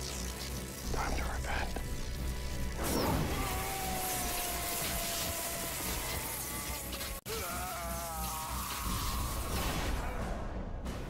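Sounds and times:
steady electric hiss: 0:00.0 - 0:02.9, 0:03.5 - 0:09.6.

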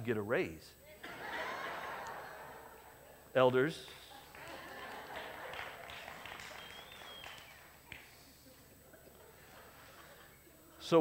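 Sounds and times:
faint scattered applause: 0:03.8 - 0:08.8.

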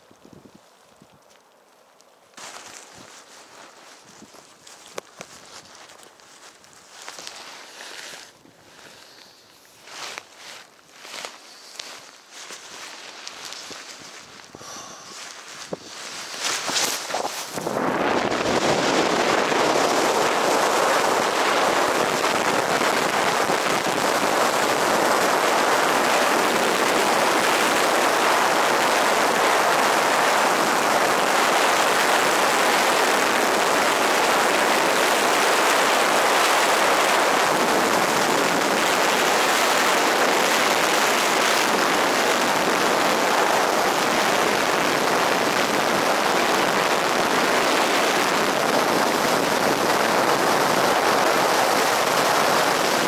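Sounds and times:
wind rushing past camera: 0:06.8 - 0:28.2.

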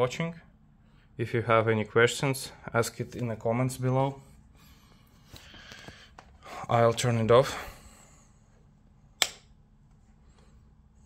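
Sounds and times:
switch click: 0:09.2 - 0:09.5.

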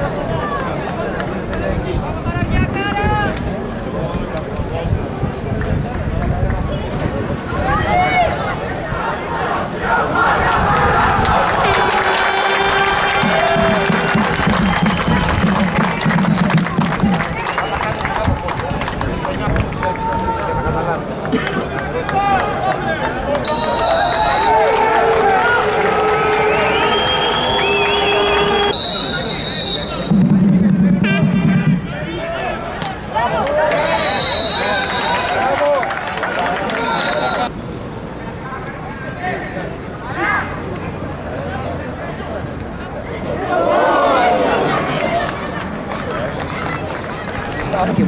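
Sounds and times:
short high whistle blasts: 0:23.4 - 0:24.7, 0:26.4 - 0:30.2, 0:33.7 - 0:35.5.

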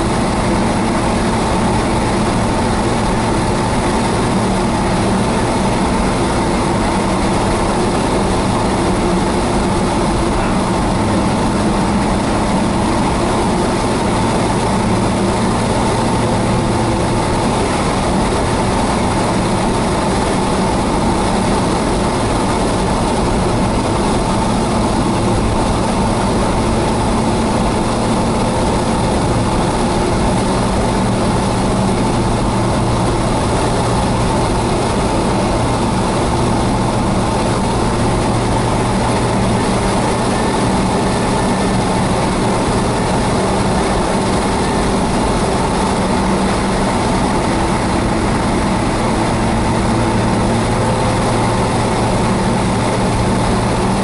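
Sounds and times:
car engine hum: 0:00.0 - 0:54.0
road noise inside car: 0:00.0 - 0:54.0.

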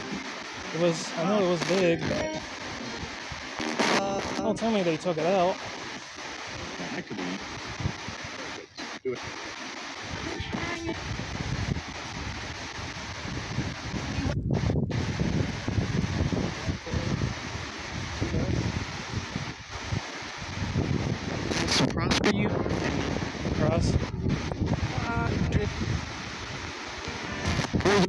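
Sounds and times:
faint broadcast voices: 0:00.0 - 0:13.0, 0:21.4 - 0:28.0
radio static hiss: 0:00.0 - 0:28.0
wind rumble on microphone: 0:07.4 - 0:28.0.

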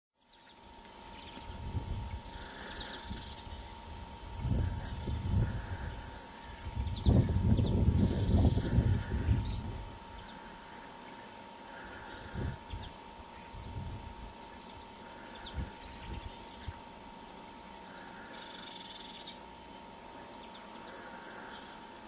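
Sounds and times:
faint steady hum: 0:00.2 - 0:22.0
small birds chirping: 0:00.2 - 0:22.0
low uneven rumble: 0:00.9 - 0:18.3.

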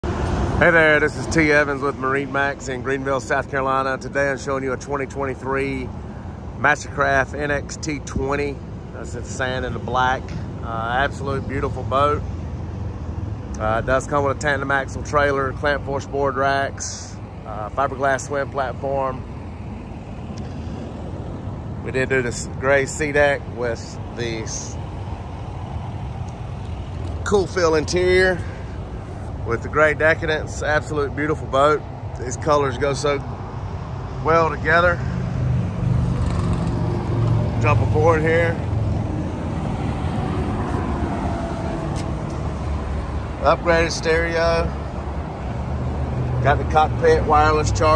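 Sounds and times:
man speaking: 0:13.6 - 0:19.3, 0:21.8 - 0:24.8, 0:27.1 - 0:28.7, 0:29.3 - 0:33.3, 0:34.1 - 0:35.2, 0:37.5 - 0:38.7, 0:43.4 - 0:44.8.

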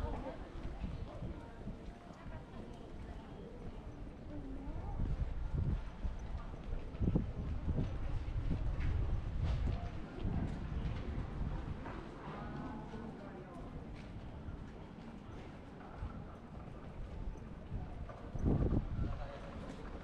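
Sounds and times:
people talking faintly: 0:00.0 - 0:20.0.

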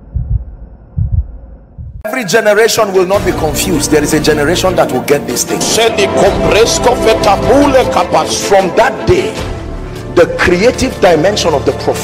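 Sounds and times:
low double thumps: 0:00.0 - 0:02.0.

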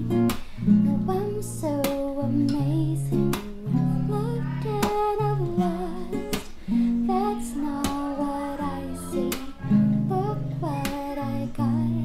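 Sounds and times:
acoustic guitar strumming: 0:00.0 - 0:12.0
woman singing pop melody: 0:00.0 - 0:12.0.

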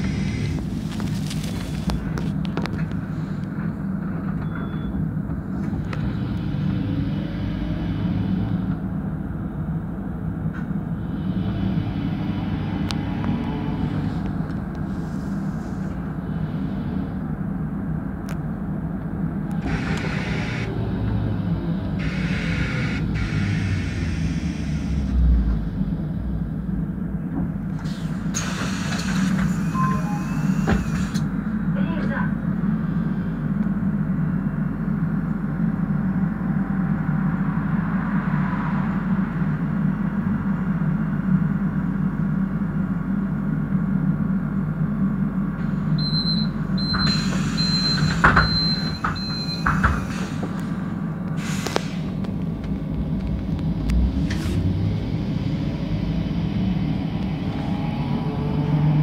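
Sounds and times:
high warning beeps: 0:04.4 - 0:05.0, 0:29.6 - 0:31.0, 0:46.0 - 0:50.0
air hissing as doors open: 0:27.7 - 0:31.3, 0:46.9 - 0:52.2.

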